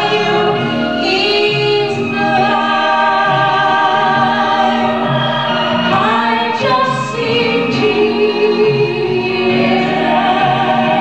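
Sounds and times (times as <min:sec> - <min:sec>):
sustained accompaniment: 0:00.0 - 0:11.0
voices singing slow hymn: 0:00.0 - 0:11.0.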